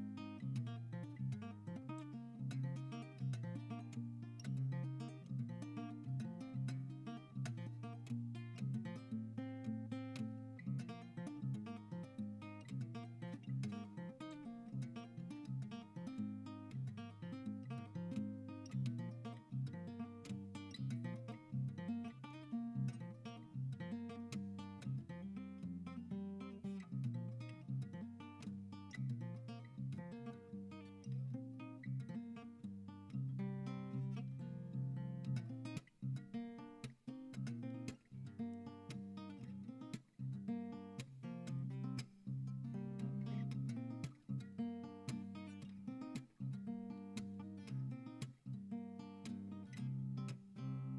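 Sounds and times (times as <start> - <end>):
acoustic guitar picking: 0.0 - 50.9.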